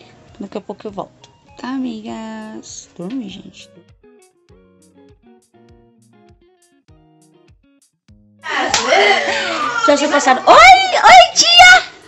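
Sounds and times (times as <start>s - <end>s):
voices in a room: 0.0s - 4.5s, 8.4s - 12.0s
woman speaking: 0.4s - 3.7s, 8.8s - 11.8s
sharp slap-like click: 8.7s - 8.9s.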